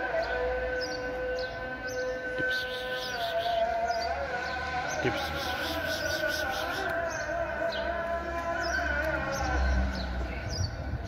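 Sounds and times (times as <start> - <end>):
person calling a cat: 2.4 - 3.6, 5.1 - 7.0.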